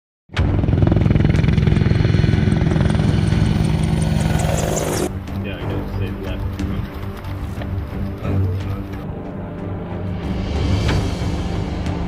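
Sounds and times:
helicopter rotor chop: 0:00.4 - 0:05.4
turbine engines running: 0:00.4 - 0:05.8.

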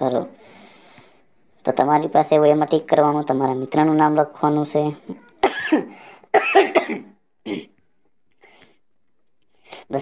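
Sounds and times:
person speaking: 0:00.0 - 0:00.8, 0:01.6 - 0:06.1
person coughing: 0:05.4 - 0:07.8.

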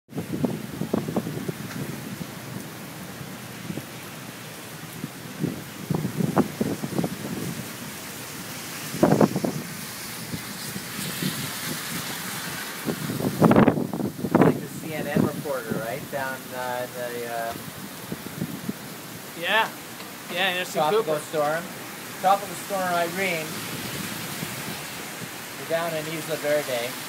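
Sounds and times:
heavy rain pouring: 0:00.1 - 0:27.0
wind gusts buffeting microphone: 0:00.1 - 0:27.0.

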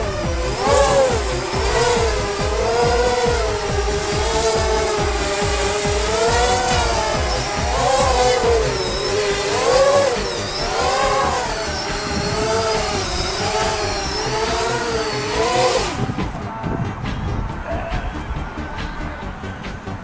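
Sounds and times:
quadcopter motors whining: 0:00.0 - 0:20.0.

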